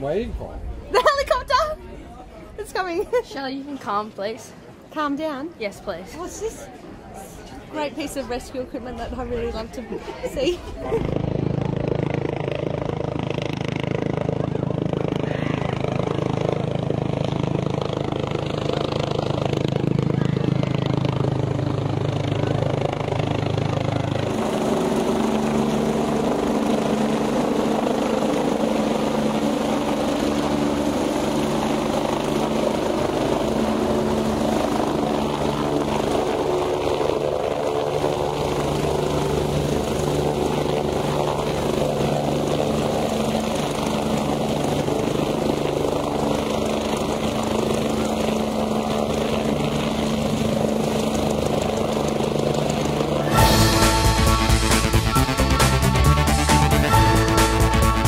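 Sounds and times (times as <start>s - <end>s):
helicopter turbine whine: 2.4s - 58.0s
helicopter rotor beat: 2.6s - 58.0s.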